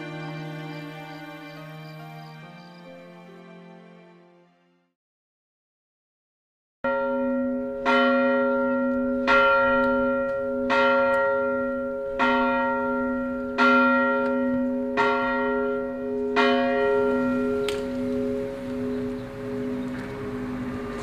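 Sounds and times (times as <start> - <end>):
church bell tolling: 6.9 - 21.0.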